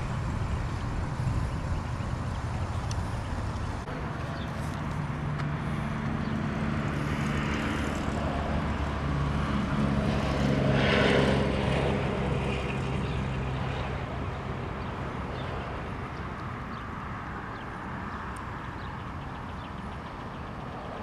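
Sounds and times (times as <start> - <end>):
vehicle engine droning: 0.0 - 21.0.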